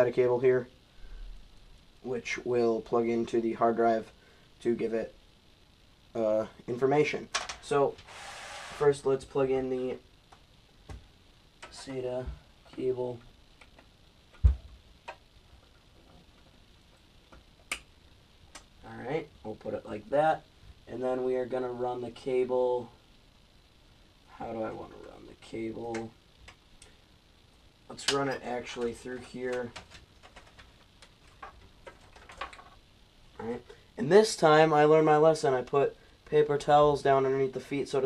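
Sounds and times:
cable clicks and rustles: 27.9s - 32.9s.

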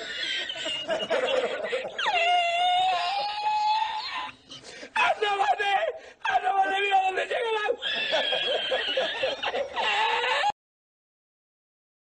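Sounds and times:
man laughing in high squeals: 0.0s - 4.4s, 7.8s - 10.5s.

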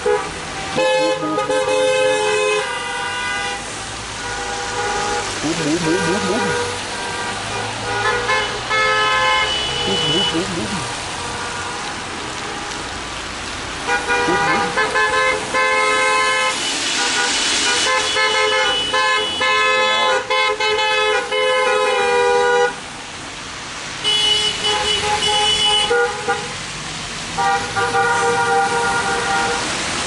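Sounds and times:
car horns honking: 0.1s - 11.7s, 13.9s - 22.3s.

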